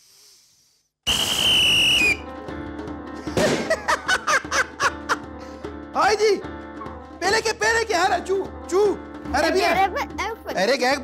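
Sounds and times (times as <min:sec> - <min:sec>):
loud whistle blast: 0:01.0 - 0:02.3
music: 0:01.2 - 0:11.0.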